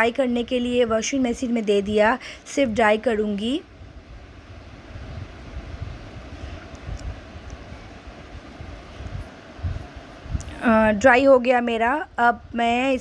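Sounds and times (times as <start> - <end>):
washing machine spin rumble: 0.0 - 13.0.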